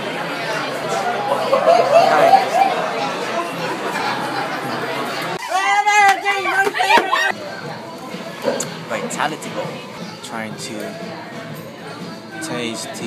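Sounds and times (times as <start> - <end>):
restaurant chatter: 0.0 - 13.0.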